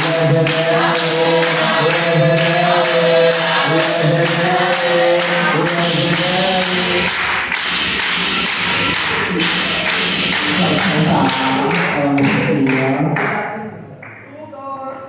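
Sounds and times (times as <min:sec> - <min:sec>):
group of voices chanting: 0:00.0 - 0:13.2
hand claps: 0:00.0 - 0:14.4.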